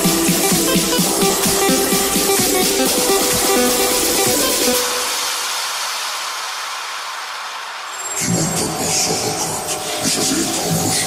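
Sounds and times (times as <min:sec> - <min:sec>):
white noise hiss: 0:01.0 - 0:11.0.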